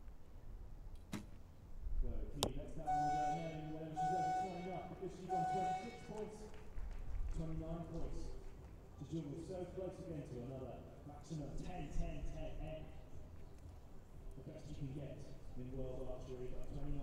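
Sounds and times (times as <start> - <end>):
person's voice with held notes: 2.8 - 6.3.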